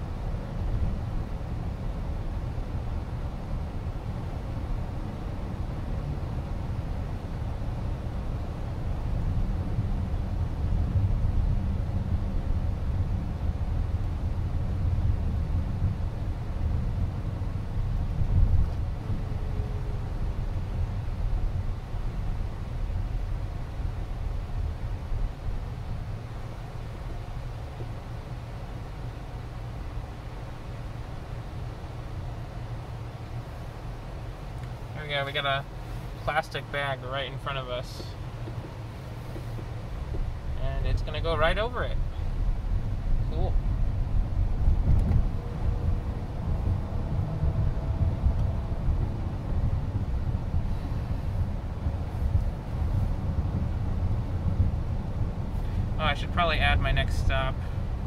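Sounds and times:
road and tyre noise in car: 0.0s - 58.0s.

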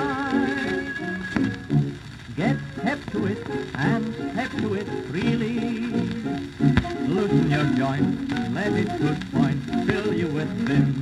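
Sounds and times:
old dance band recording: 0.0s - 11.0s.

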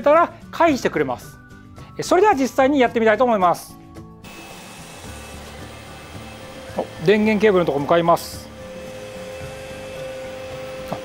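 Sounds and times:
robot vacuum humming and whining: 4.2s - 11.0s.

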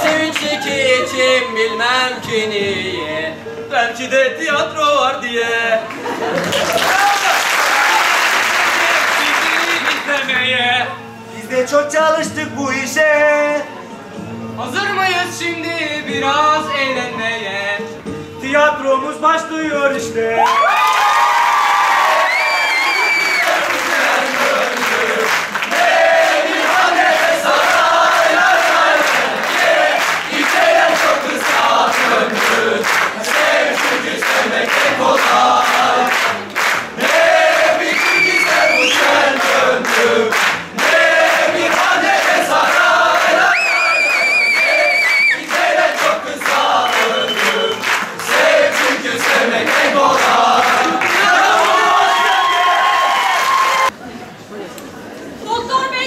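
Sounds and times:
audience clapping in time: 5.9s - 10.4s, 20.5s - 53.9s
whistling: 22.3s - 23.6s, 37.9s - 39.2s, 43.5s - 45.5s, 46.7s - 48.0s
crowd shouting along: 40.8s - 53.9s.

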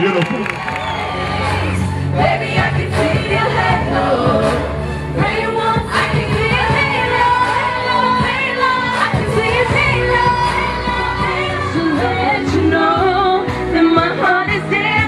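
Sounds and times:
backing music with bass line: 0.0s - 15.0s
women singing pop song: 1.0s - 15.0s.

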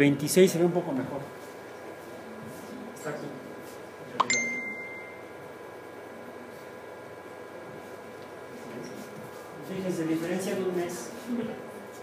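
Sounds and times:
high ringing ding: 4.2s - 5.3s.

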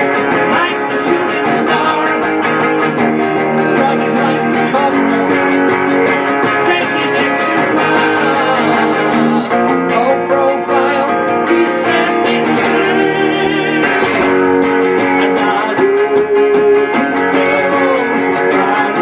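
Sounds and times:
electric guitar strummed: 0.0s - 19.0s
man singing: 0.0s - 19.0s.

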